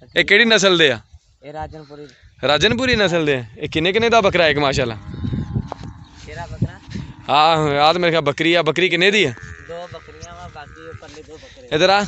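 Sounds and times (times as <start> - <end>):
goat bleating: 9.0 - 11.4.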